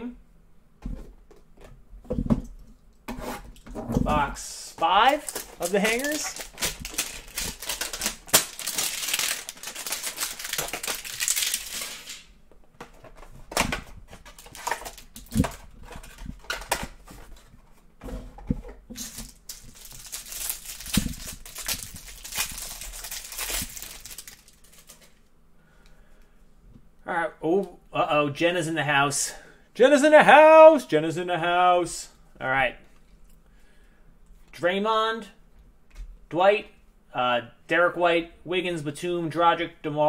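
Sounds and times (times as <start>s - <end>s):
plastic wrap crinkling and tearing: 4.8s - 12.3s, 14.1s - 16.8s, 18.9s - 25.2s.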